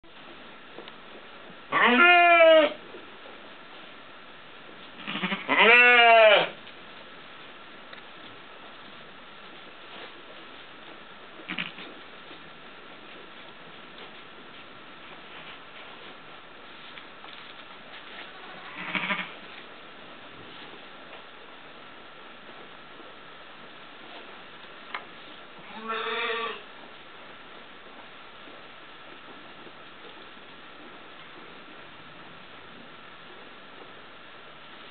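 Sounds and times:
sheep bleating: 1.7s - 2.8s, 5.0s - 6.6s, 18.2s - 19.3s, 25.6s - 26.6s
short low sheep sounds: 11.5s - 11.9s, 18.2s - 19.4s, 25.6s - 26.7s.

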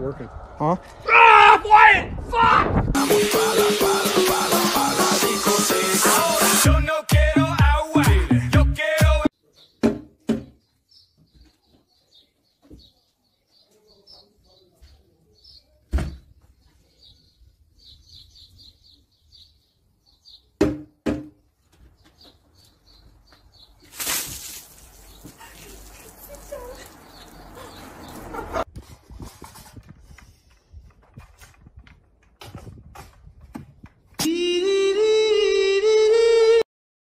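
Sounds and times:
loud music: 3.0s - 9.3s
birds chirping: 9.3s - 20.6s, 21.4s - 28.6s.

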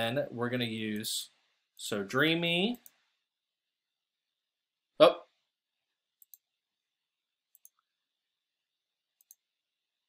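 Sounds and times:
computer mouse clicks: 6.2s - 6.5s, 7.5s - 7.8s, 9.2s - 9.5s.

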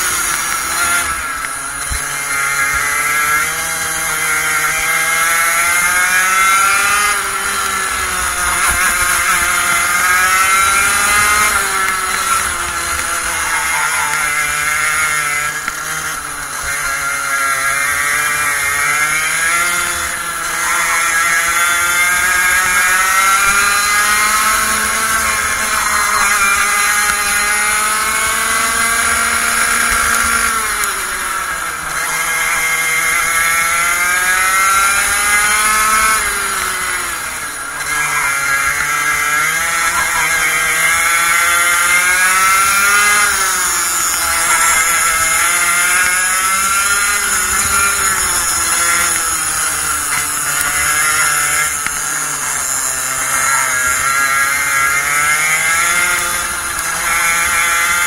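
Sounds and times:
kart engine at high revs: 0.0s - 58.0s.

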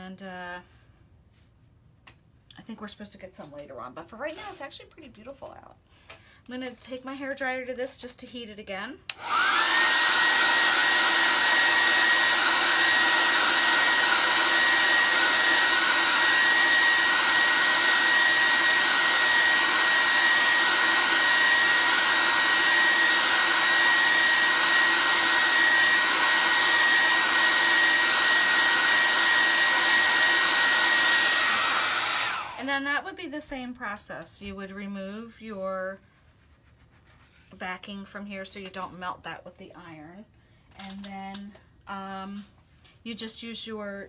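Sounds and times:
hair dryer blowing with whine: 9.1s - 32.9s.

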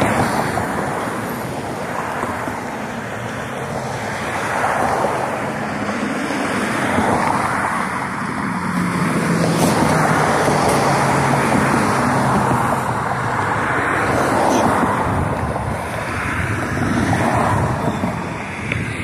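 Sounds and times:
cars passing by: 0.0s - 19.0s.

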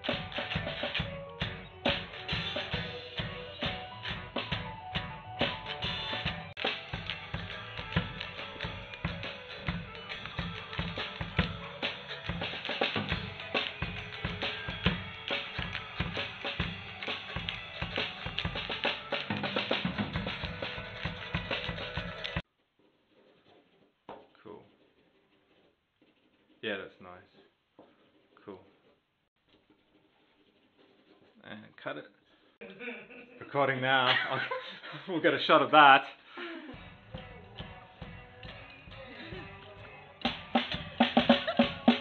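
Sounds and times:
drum kit beat: 0.0s - 22.4s, 36.7s - 42.0s
hard rock band playing: 0.0s - 22.4s.

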